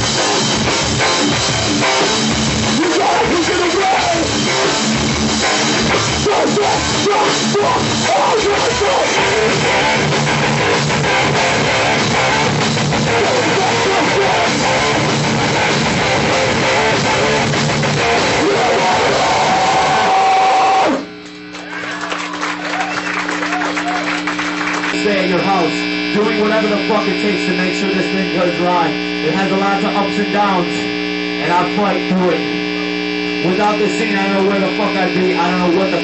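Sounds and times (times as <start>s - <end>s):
drums: 0.0s - 21.1s
amplifier hum: 0.0s - 36.0s
distorted electric guitars: 0.0s - 36.0s
crowd voices: 18.0s - 25.6s.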